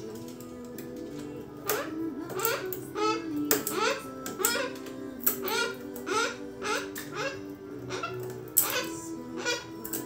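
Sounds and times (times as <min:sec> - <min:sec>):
background music: 0:00.0 - 0:10.0
cockatoo calling: 0:01.6 - 0:10.0.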